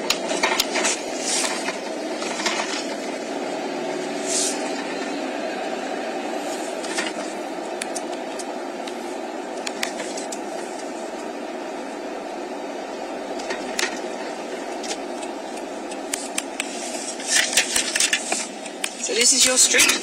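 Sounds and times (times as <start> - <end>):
car road and engine noise: 0.0 - 20.0.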